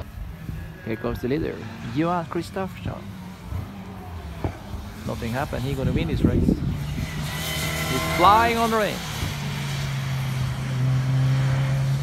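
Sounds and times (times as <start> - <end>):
distant race car engine drone: 0.0 - 12.0.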